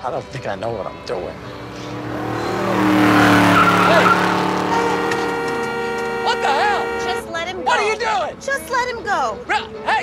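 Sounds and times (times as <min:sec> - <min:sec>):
car engine passing fast: 0:00.9 - 0:07.2
tyres squealing: 0:01.7 - 0:07.2.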